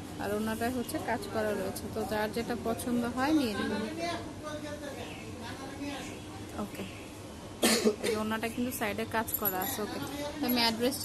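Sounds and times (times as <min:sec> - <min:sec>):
person coughing: 0:07.6 - 0:08.2.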